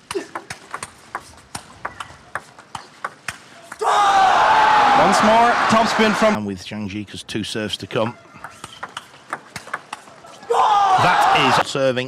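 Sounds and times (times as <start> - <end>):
faint arena crowd: 3.6 - 6.4.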